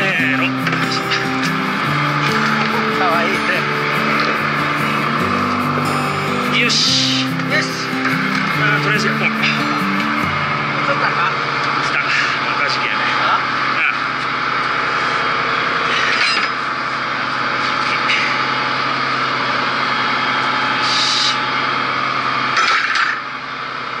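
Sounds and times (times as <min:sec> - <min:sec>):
boat engine droning: 0:00.0 - 0:22.6.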